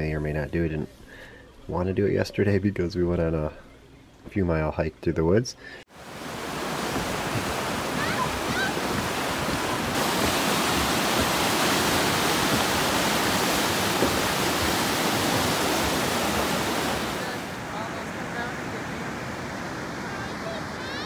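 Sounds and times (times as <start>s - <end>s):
river rapids rushing over rocks: 6.0s - 18.8s.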